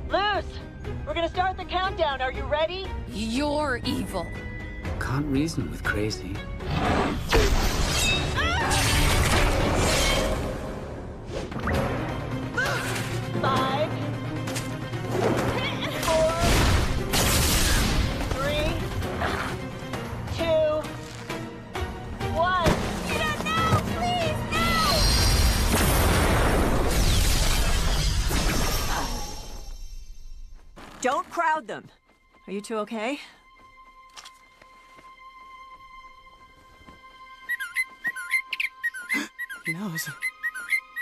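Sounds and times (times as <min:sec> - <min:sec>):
dramatic background music: 0:00.0 - 0:30.6, 0:31.5 - 0:41.0
cartoon shouts and screams: 0:08.4 - 0:09.0, 0:23.1 - 0:25.1
cartoon bird chirping: 0:37.5 - 0:41.0.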